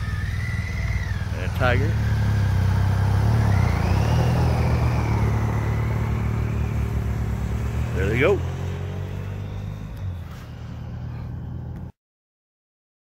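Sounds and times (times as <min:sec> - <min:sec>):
motorcycles riding off: 0:00.0 - 0:11.9.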